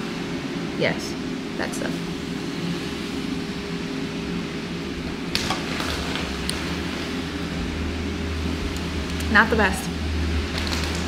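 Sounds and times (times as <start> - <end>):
low indoor hum: 0.0 - 11.0.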